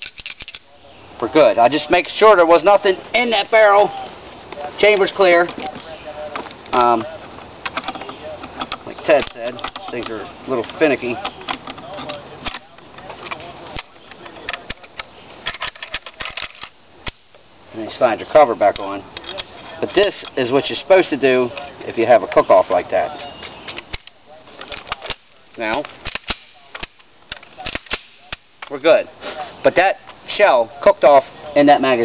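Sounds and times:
rifle metal clicks and clacks: 0:00.0 - 0:00.7, 0:07.6 - 0:17.3, 0:23.7 - 0:28.8
rifle action clicking: 0:23.8 - 0:28.7.

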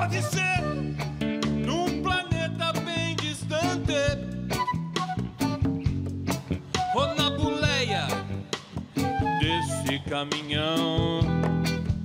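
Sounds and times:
man singing: 0:00.0 - 0:04.4, 0:06.8 - 0:08.6, 0:09.2 - 0:11.9
bass guitar: 0:00.0 - 0:12.0
drums steady beat: 0:00.0 - 0:12.0
electric guitar: 0:00.0 - 0:12.0.

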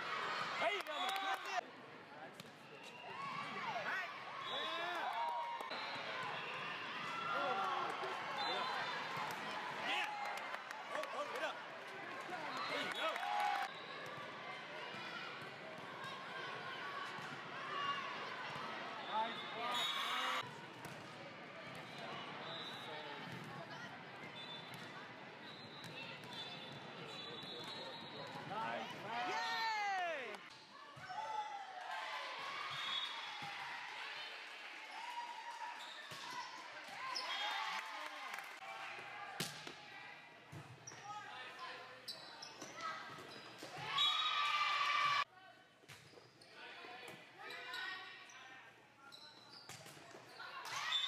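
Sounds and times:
voices echoing in a gym: 0:00.0 - 0:20.6, 0:21.2 - 0:37.6, 0:38.6 - 0:43.1, 0:45.2 - 0:45.8, 0:46.4 - 0:49.4
sneaker squeaks on court floor: 0:42.0 - 0:44.1, 0:49.0 - 0:51.0.

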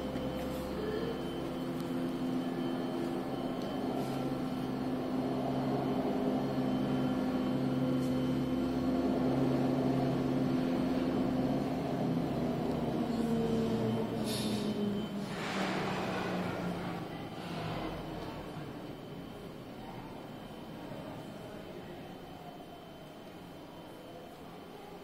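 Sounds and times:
machinery hum: 0:00.0 - 0:25.0.

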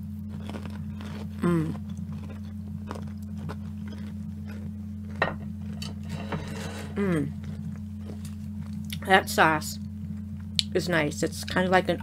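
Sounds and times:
close-up chewing: 0:00.0 - 0:06.4, 0:07.3 - 0:09.0
steady low hum: 0:00.0 - 0:12.0.

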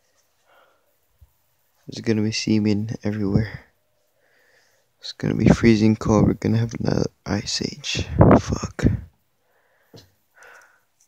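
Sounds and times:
soft sniff: 0:00.1 - 0:01.8.

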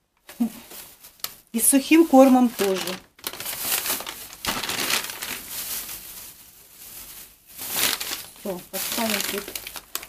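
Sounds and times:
plastic bag crinkling: 0:00.2 - 0:10.0.

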